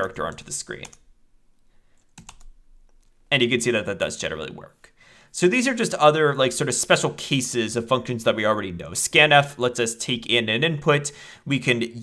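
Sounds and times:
computer keyboard keystrokes: 2.1s - 3.0s.

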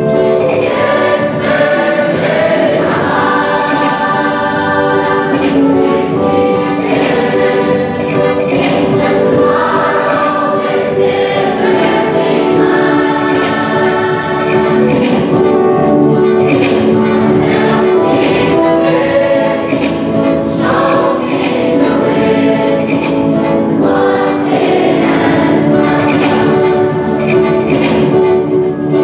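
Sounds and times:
choir singing in harmony: 0.0s - 29.0s.

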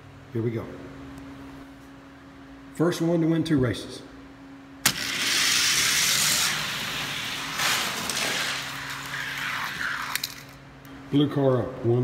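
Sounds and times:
faint steady hum: 0.0s - 12.0s
toy cars rolling on plastic track: 4.9s - 10.5s.

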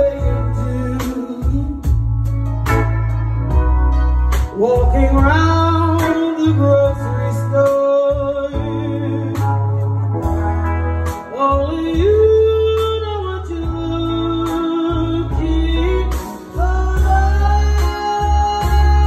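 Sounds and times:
live band playing: 0.0s - 19.0s.

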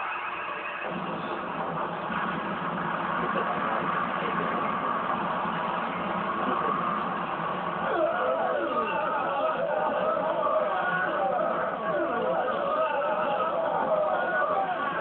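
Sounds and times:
rushing roar of battle sound effects: 0.8s - 15.0s.

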